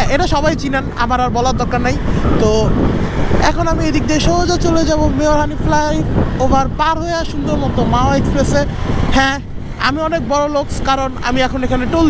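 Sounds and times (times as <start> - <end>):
man talking: 0.0 - 12.0
rushing air: 0.0 - 12.0.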